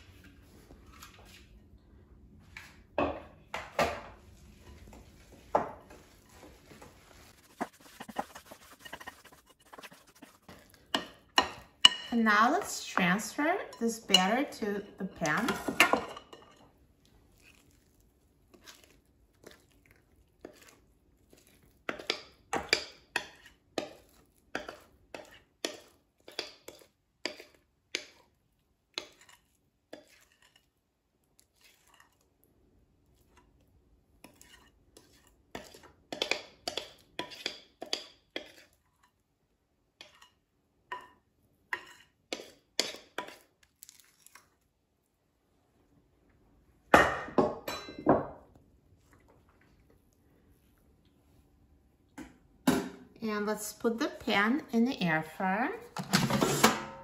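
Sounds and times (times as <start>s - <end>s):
spatula scraping glass bowl: 7.3s - 16.6s, 34.2s - 38.8s.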